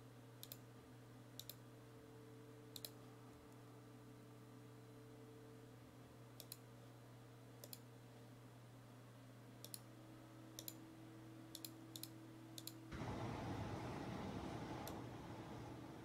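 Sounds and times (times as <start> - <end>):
faint steady hum: 0.0 - 16.0
computer mouse clicking: 0.4 - 0.6, 1.4 - 1.6, 2.7 - 3.0, 6.4 - 6.7, 7.6 - 7.9, 9.6 - 9.9, 10.6 - 10.8, 11.5 - 12.8.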